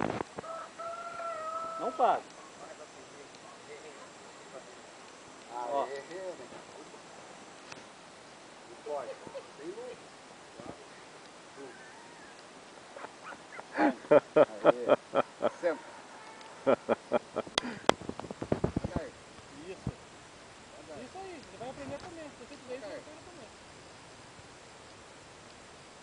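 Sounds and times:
rooster crowing: 0.4 - 2.3, 11.6 - 12.6, 15.7 - 17.0.

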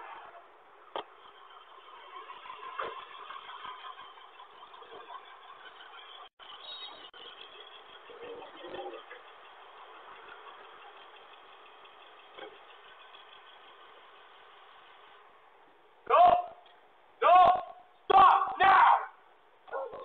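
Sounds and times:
vehicles passing on street: 0.0 - 20.0.

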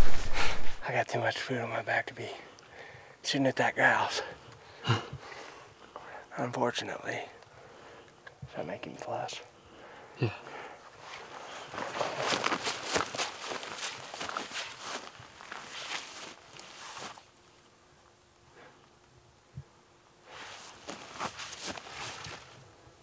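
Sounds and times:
footsteps crunching through brush: 10.8 - 17.7, 20.3 - 22.6.

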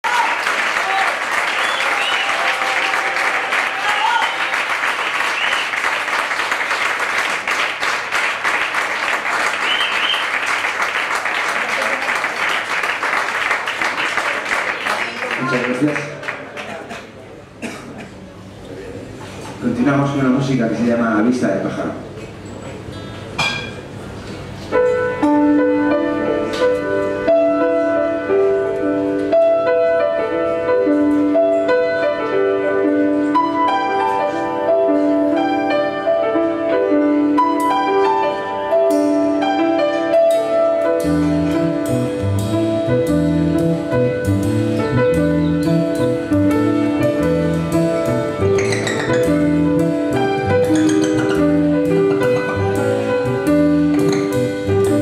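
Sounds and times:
piano chords: 22.8 - 55.0.

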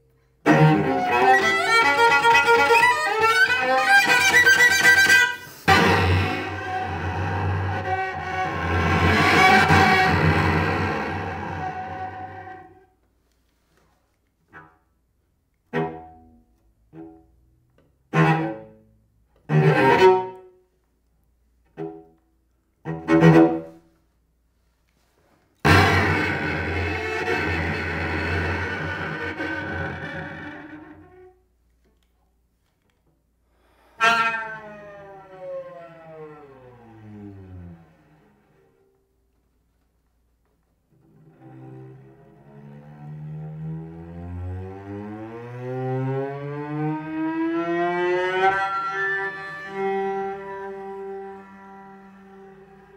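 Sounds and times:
cello bowing low notes: 0.4 - 12.9, 15.6 - 20.6, 21.6 - 23.9, 25.6 - 31.5, 33.9 - 39.0, 40.9 - 52.9
lower cello note: 41.1 - 52.9.

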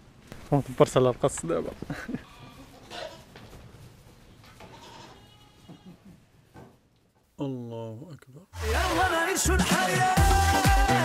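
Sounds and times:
goats bleating faintly: 2.1 - 3.4, 4.5 - 6.4.

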